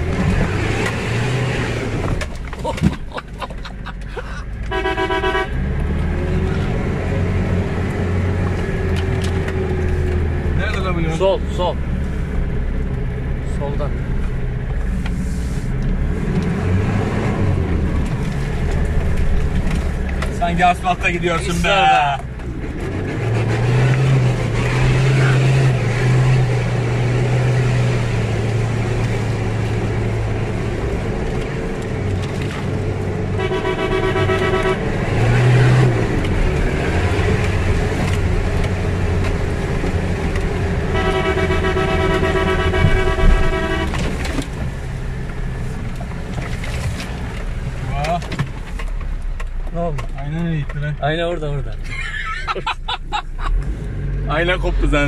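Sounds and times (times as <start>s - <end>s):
car horn: 4.7s - 5.7s, 33.3s - 35.8s, 40.9s - 44.1s.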